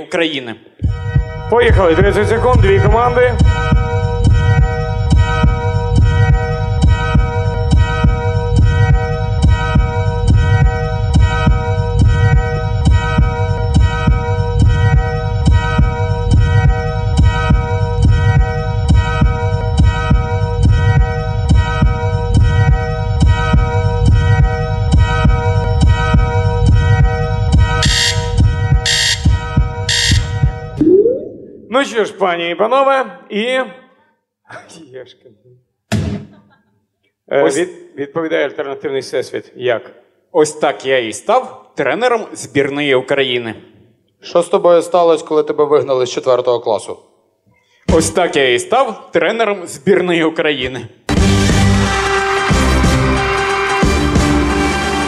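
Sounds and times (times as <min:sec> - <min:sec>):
loud beeps: 0:27.8 - 0:31.8.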